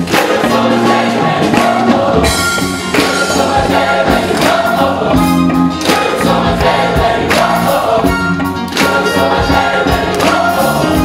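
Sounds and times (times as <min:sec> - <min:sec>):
gospel choir singing: 0:00.0 - 0:11.0
live band playing: 0:00.0 - 0:11.0
percussion beat: 0:00.0 - 0:11.0.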